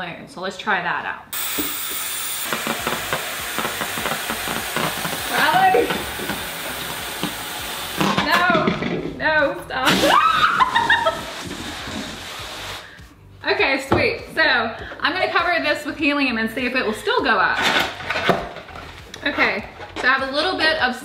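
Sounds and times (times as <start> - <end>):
helium hissing into balloon: 1.4 - 8.2, 9.8 - 13.1
people laughing: 10.2 - 11.3.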